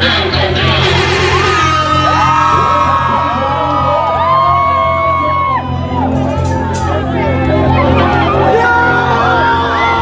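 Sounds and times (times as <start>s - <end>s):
loud dance music: 0.0s - 7.3s
voices whooping: 1.0s - 7.0s.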